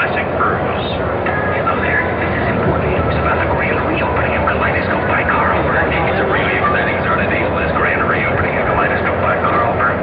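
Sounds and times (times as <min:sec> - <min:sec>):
indistinct voices: 0:00.0 - 0:10.0
steady rumbling noise: 0:00.0 - 0:10.0.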